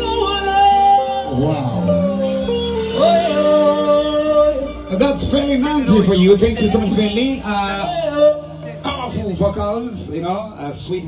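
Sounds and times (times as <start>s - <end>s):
person singing long notes: 0.0s - 9.1s
live band playing: 0.0s - 11.0s.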